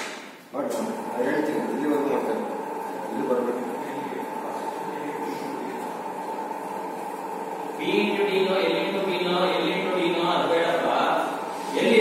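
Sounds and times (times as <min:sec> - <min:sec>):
mechanical running noise: 0:00.6 - 0:12.0.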